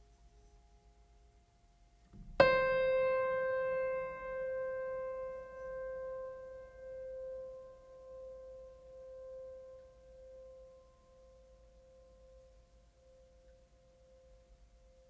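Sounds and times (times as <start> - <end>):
sustained piano note: 2.3 - 10.8.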